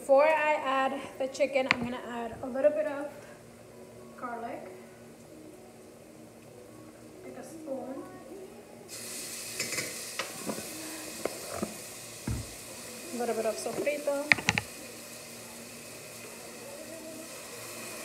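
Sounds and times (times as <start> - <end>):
food sizzling in oil: 8.8 - 18.0
heavy knock: 12.3 - 12.5.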